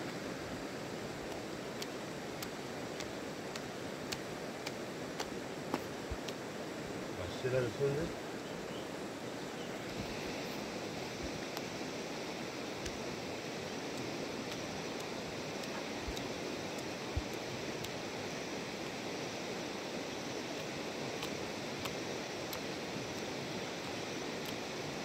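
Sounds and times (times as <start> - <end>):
steady rushing noise: 0.0 - 25.0
faint ticks: 1.2 - 6.4, 11.4 - 11.7, 12.8 - 13.0, 13.8 - 18.0, 20.5 - 24.8.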